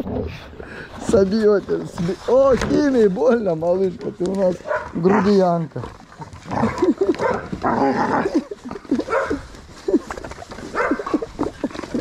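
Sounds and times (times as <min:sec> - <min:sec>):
dogs whining: 0:06.5 - 0:12.0.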